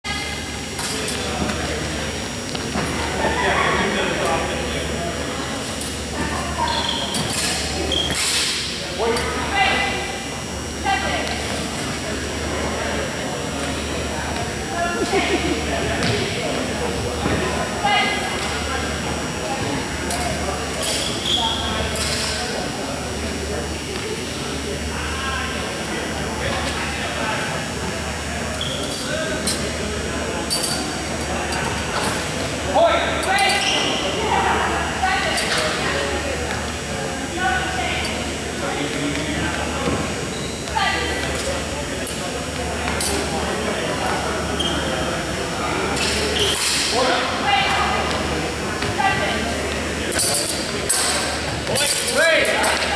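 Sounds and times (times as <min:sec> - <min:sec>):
voices chattering in a hall: 0:00.0 - 0:52.9.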